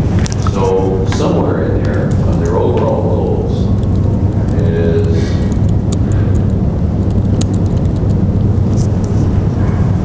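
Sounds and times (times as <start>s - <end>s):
low room rumble: 0.0s - 10.0s
laptop keystrokes clicking: 3.7s - 4.6s, 5.4s - 8.2s.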